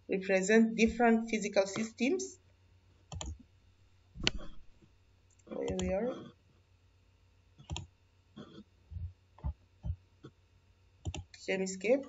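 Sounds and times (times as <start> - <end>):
computer mouse clicking: 3.1 - 3.4, 4.2 - 4.6, 7.6 - 7.9, 11.0 - 11.4.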